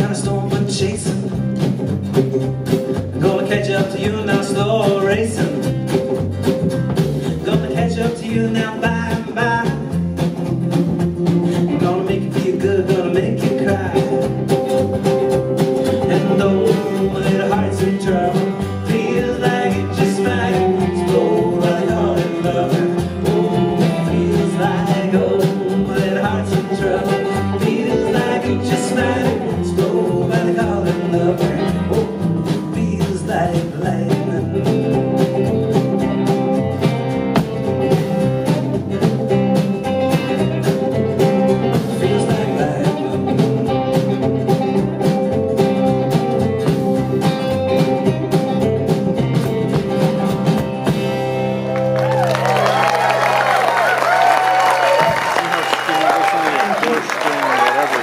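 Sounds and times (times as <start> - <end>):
person singing: 0.0 - 1.4, 3.2 - 5.8, 7.2 - 10.0, 11.5 - 14.6, 15.8 - 35.8, 40.4 - 44.0
plucked upright bass: 0.0 - 55.6
strummed acoustic guitars: 0.0 - 58.0.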